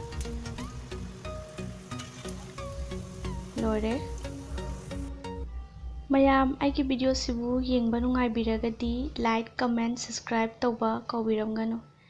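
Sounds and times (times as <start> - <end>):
oil sizzling and crackling: 0.0 - 5.2
background music: 0.0 - 12.0.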